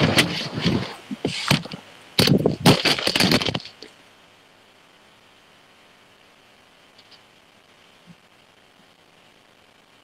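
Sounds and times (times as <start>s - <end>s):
phone microphone rubbing: 0.0s - 3.9s
faint steady hiss: 0.0s - 10.0s.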